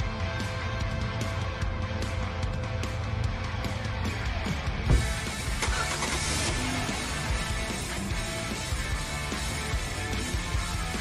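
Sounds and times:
background music: 0.0s - 11.0s
car engine starting and revving: 4.8s - 10.2s.

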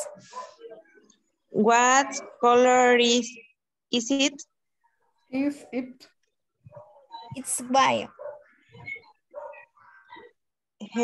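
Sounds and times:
dog barking: 0.0s - 0.9s, 6.7s - 7.2s, 8.1s - 8.6s, 9.3s - 10.3s
voices on a call: 0.0s - 11.0s.

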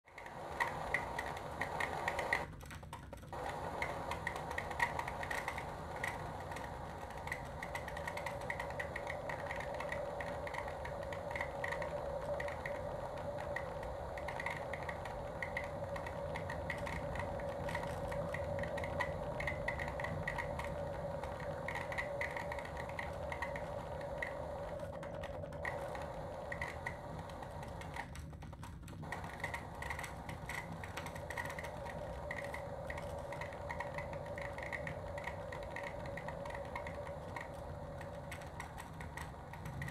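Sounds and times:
rapid irregular clicks: 0.0s - 39.9s
low hum: 3.4s - 28.2s, 29.0s - 39.9s
steady droning tone: 29.0s - 39.9s.

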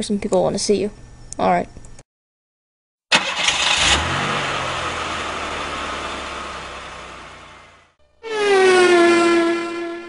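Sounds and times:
car engine starting and running: 3.1s - 9.9s.

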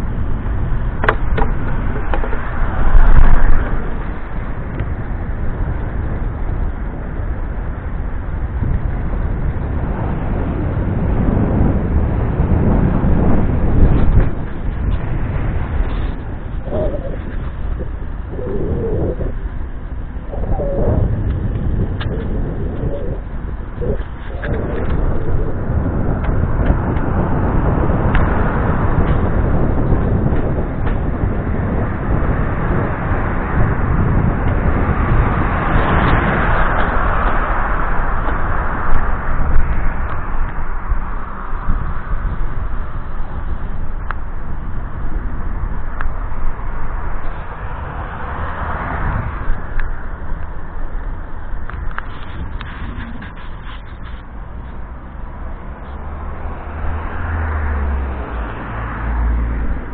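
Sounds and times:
rolling noise: 0.0s - 32.9s, 49.2s - 57.2s
wind rumbling on microphone: 0.0s - 59.9s
pigeon cooing: 16.6s - 19.4s, 20.2s - 21.3s, 22.0s - 25.4s.

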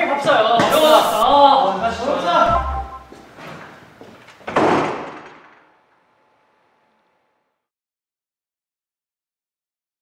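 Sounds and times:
door banging shut: 4.5s - 5.5s.

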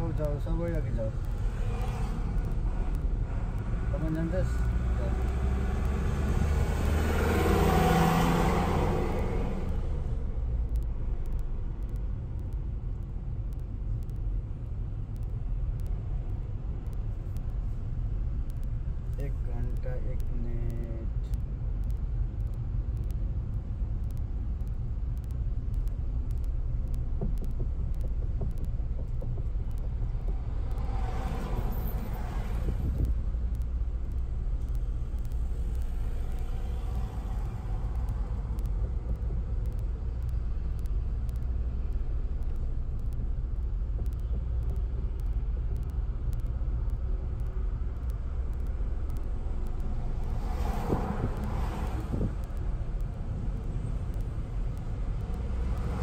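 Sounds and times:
car cabin road rumble: 0.0s - 56.0s
rush of noise: 24.0s - 56.0s.

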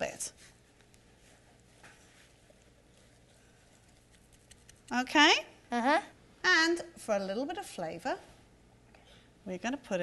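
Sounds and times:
woman speaking: 0.0s - 0.4s, 4.9s - 5.5s, 6.4s - 8.3s, 9.4s - 10.0s
faint soft clicks of paper towel: 0.4s - 5.0s.

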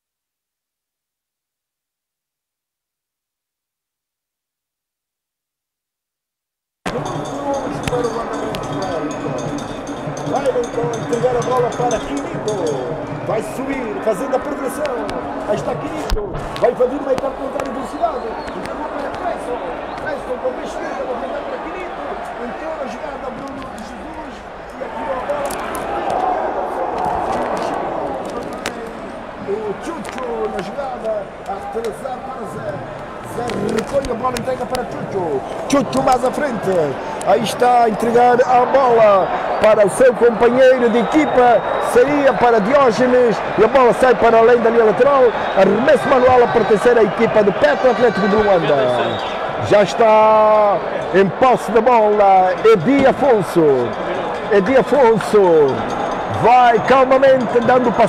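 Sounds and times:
music: 6.9s - 15.9s
voices: 6.9s - 58.0s.

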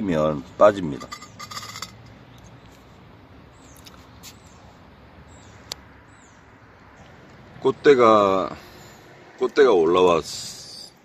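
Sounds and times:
glass bottle scraping in planter: 1.0s - 2.0s.

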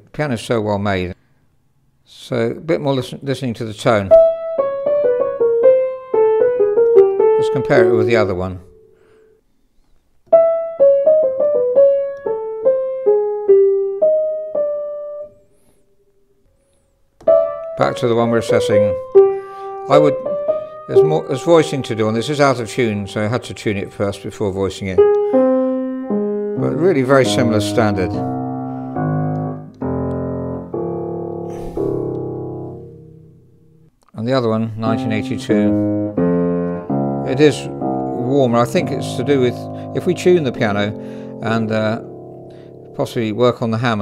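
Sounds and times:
upright piano melody: 4.1s - 9.2s, 10.3s - 15.4s, 17.2s - 33.9s, 34.6s - 44.0s.

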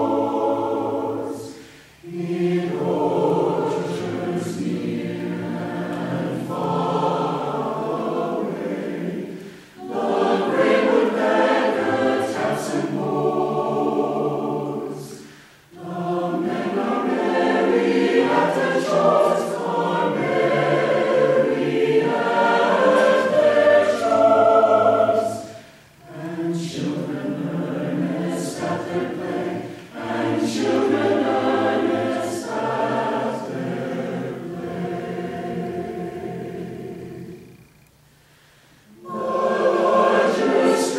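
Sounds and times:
mixed choir singing: 0.0s - 37.7s, 38.8s - 40.9s.

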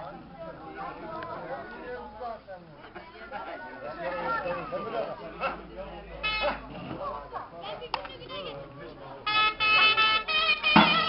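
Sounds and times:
people talking outdoors: 0.0s - 11.0s.

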